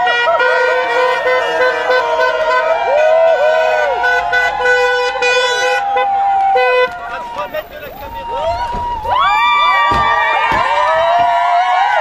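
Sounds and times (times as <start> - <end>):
car horns honking: 0.0 - 9.1
people whooping: 0.0 - 12.0.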